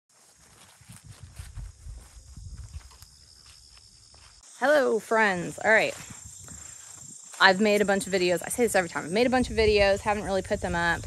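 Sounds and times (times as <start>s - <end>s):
footsteps on grass: 0.1s - 8.9s.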